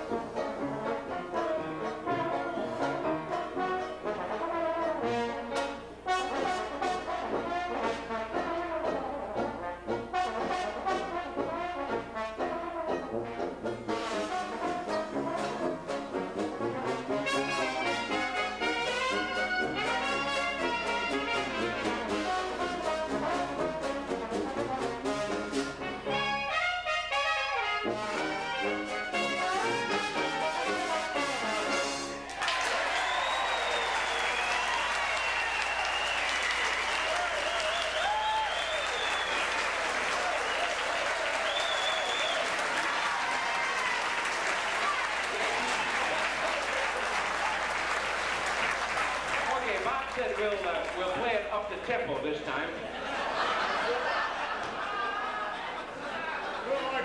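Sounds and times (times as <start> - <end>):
traditional jazz band playing: 0.0 - 54.6.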